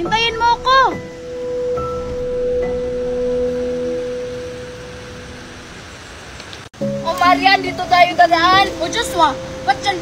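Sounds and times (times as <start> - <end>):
steady background hiss: 0.0 - 10.0
sustained ringing tone: 1.1 - 5.7.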